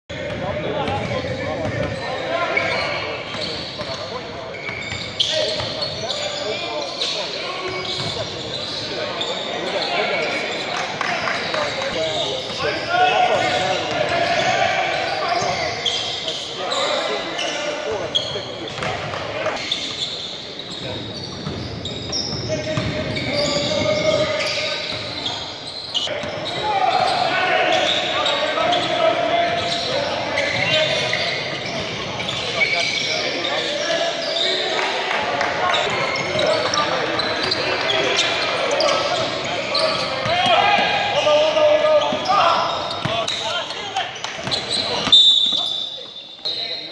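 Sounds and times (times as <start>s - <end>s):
echoing voices and shouts: 0.1s - 19.8s, 20.4s - 46.9s.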